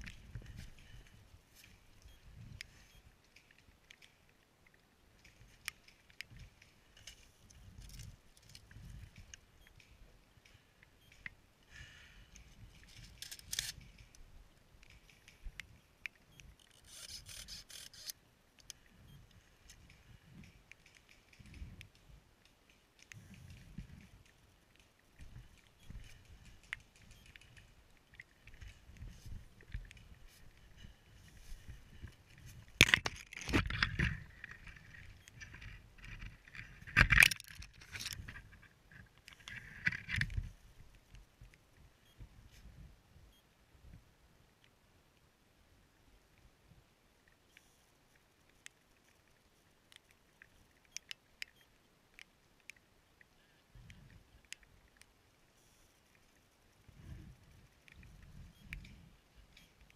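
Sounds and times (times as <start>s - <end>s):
faint crackles: 47.2s - 59.9s.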